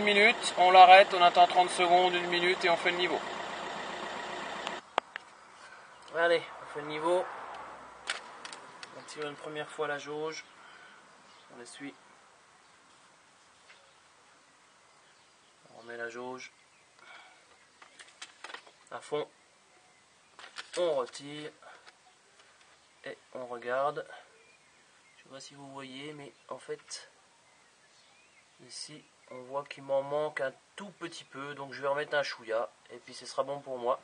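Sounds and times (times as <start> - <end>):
diesel engine idling: 0.0 - 4.8.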